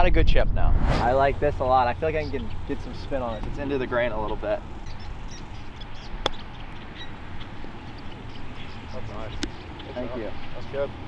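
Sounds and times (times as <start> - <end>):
golf club striking ball: 4.6 - 8.5.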